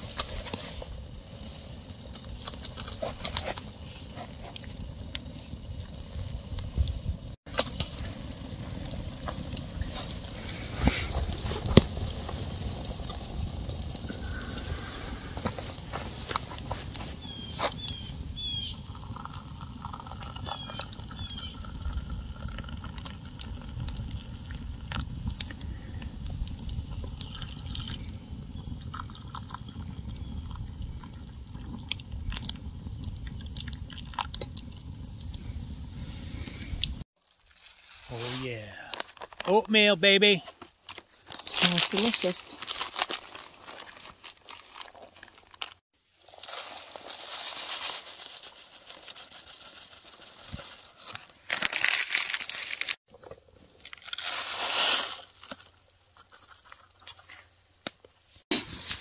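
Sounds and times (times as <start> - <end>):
campfire crackling and popping: 0.0 - 59.0
water pouring into cups: 18.8 - 25.0, 27.0 - 28.1, 28.9 - 31.2.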